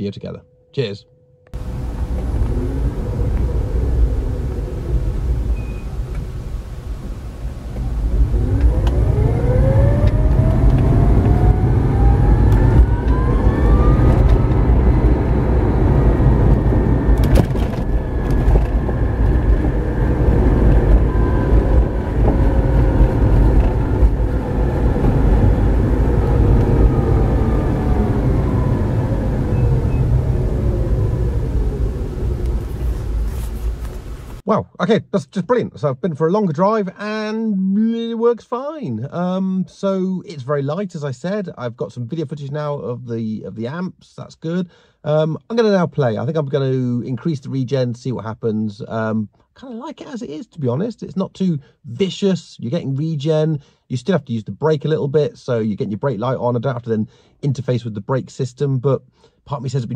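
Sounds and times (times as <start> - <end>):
electric motor whine: 1.6 - 6.2, 7.8 - 32.9
road and tyre rumble: 1.6 - 34.5.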